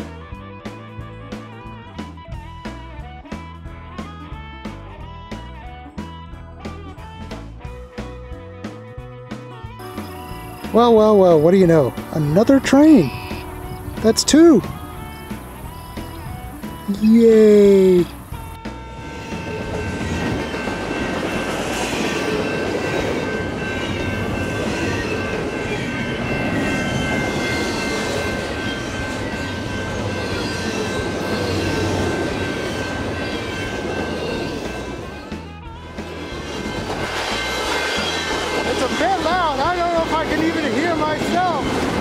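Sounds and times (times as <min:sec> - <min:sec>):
freight train rolling past: 0:09.6 - 0:42.0.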